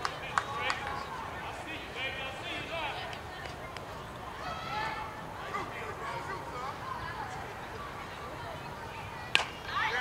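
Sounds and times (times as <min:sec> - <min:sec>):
faint voices calling out: 0:00.0 - 0:10.0
outdoor background noise: 0:00.0 - 0:10.0.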